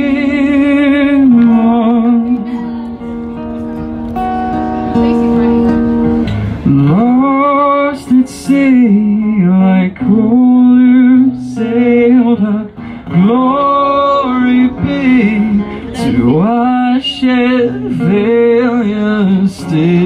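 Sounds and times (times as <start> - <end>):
acoustic guitar: 0.0 - 20.0
man singing long held notes: 6.7 - 20.0.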